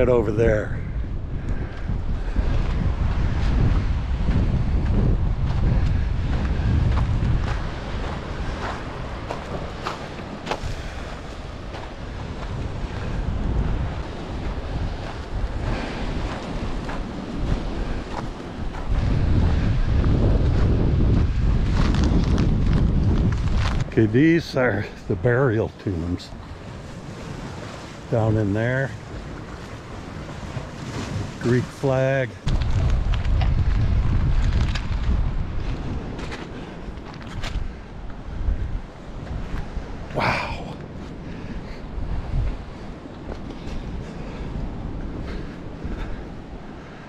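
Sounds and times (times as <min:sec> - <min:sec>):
sea surf on rocks: 0:00.0 - 0:47.0
wind buffeting microphone: 0:00.0 - 0:47.0.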